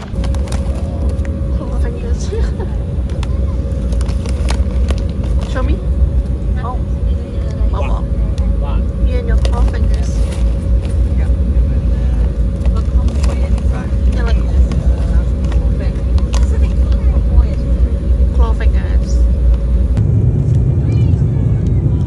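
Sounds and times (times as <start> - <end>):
airliner cabin rumble: 0.0 - 22.0
constant hum: 0.0 - 22.0.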